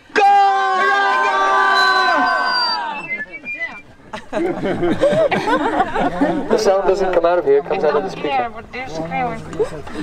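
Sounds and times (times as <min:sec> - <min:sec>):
man shouting through loudspeaker: 0:00.0 - 0:02.2.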